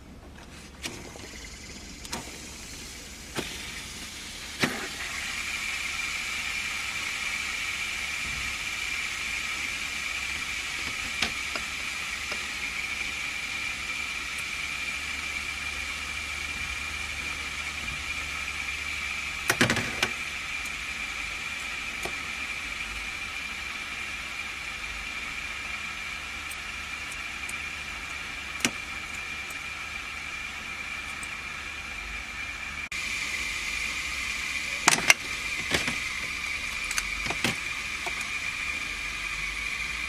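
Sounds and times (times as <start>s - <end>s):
fidget spinners whirring: 0.4s - 40.0s
fidget spinner clicks: 5.9s - 23.2s, 26.2s - 31.5s, 34.6s - 40.0s.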